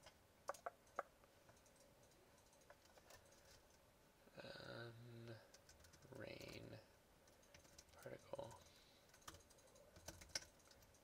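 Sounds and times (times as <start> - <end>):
mouse and keyboard clicking: 0.0 - 3.8, 5.5 - 8.0, 8.6 - 11.0.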